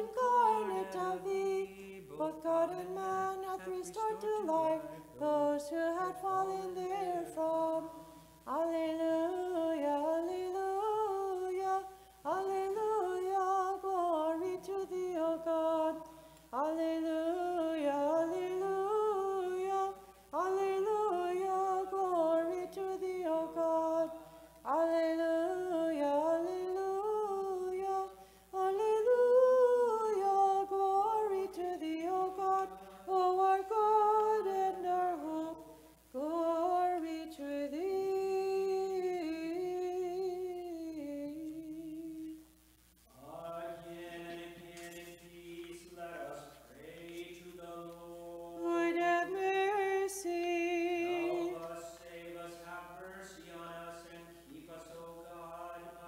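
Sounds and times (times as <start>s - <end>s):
person chanting: 0.0s - 35.6s, 43.2s - 56.0s.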